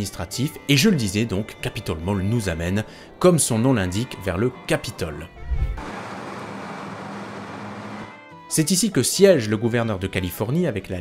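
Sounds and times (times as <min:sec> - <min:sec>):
pickup truck engine hum: 0:05.6 - 0:08.1
road noise hiss: 0:05.8 - 0:08.1.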